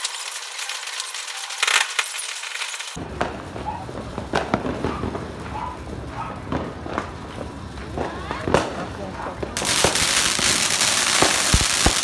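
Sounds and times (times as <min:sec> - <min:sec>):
firework fountain hissing: 0:00.0 - 0:12.0
crackling pops: 0:09.4 - 0:12.0.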